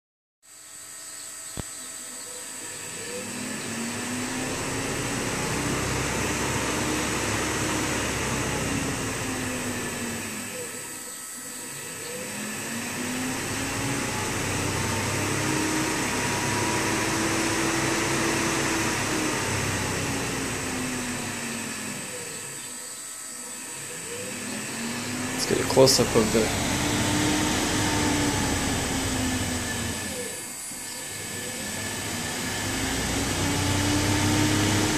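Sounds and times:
motor hum and fan noise: 0.4 - 34.9
steady high whine: 0.6 - 34.9.

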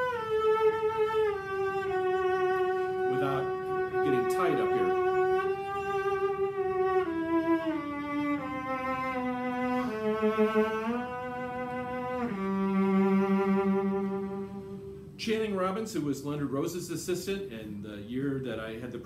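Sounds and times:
cello playing a slow scale: 0.0 - 16.7.

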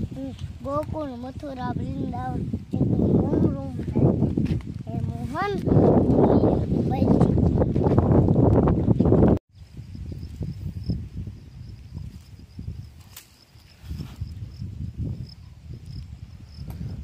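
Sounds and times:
high-pitched insect trill: 9.6 - 17.0.

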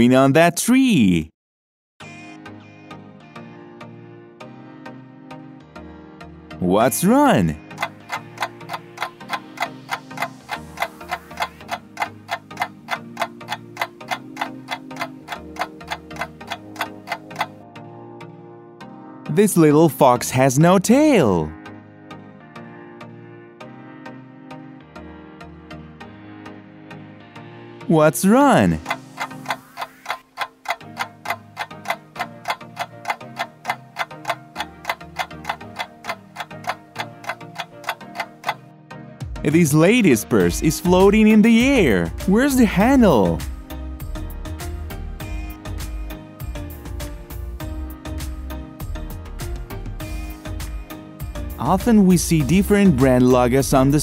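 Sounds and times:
soft background music: 2.0 - 54.0
timer clock ticking: 6.8 - 17.6, 28.0 - 38.6, 39.5 - 43.6, 51.6 - 54.0.

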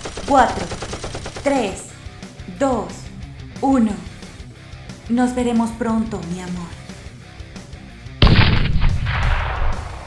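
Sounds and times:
background rock music: 1.2 - 10.0
explosion blast rumbling: 8.2 - 10.0.

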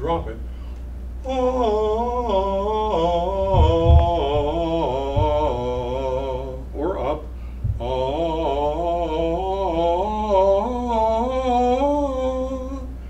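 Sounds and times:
man singing vocal warm-up: 1.2 - 13.0.

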